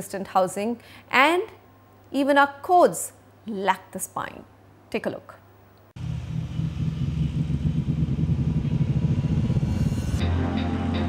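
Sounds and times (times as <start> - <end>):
deep fluttering rumble: 6.0 - 10.2.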